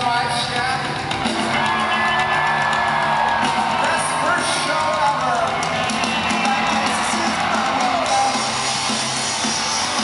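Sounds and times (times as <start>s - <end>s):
bass guitar: 0.0s - 10.0s
drums: 0.0s - 10.0s
man singing lead: 6.4s - 8.6s.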